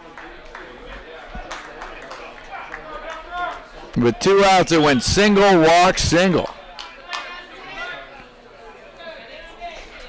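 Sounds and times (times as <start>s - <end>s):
faint scattered crowd voices: 0.0s - 10.0s.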